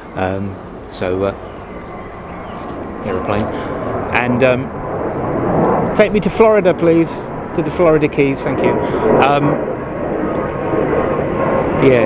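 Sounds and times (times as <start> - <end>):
aeroplane passing over: 0.0 - 12.0.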